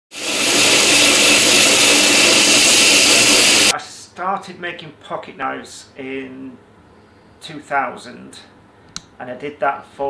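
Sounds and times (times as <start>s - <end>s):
power tool hissing and humming: 0.1s - 3.7s.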